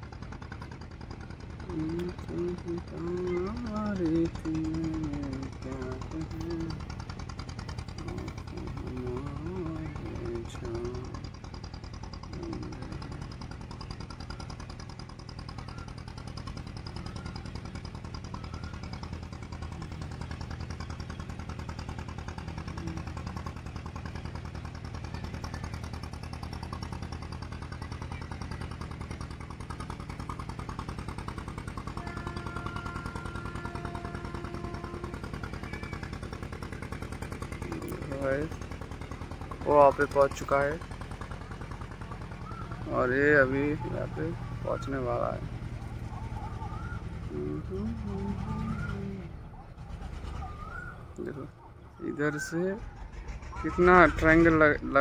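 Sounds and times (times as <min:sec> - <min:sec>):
boat engine chugging: 0:00.0 - 0:55.0.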